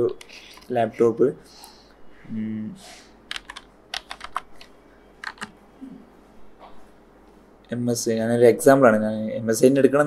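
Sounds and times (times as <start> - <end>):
computer keyboard typing: 3.3 - 5.6.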